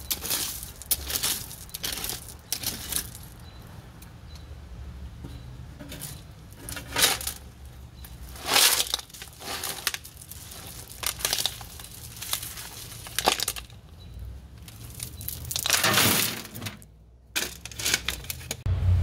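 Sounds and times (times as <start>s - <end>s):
rocks crunching and clattering: 0.0s - 3.5s, 5.8s - 18.6s.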